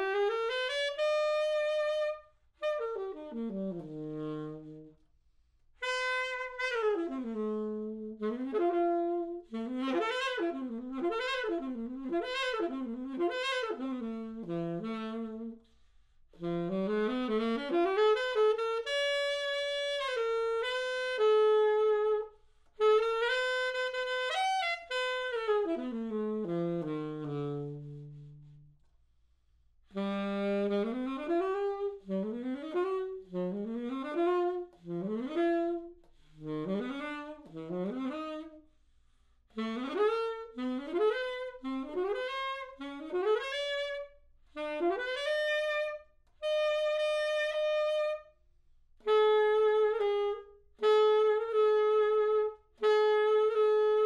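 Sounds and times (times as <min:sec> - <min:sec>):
solo saxophone playing: 0:00.0 - 0:54.0.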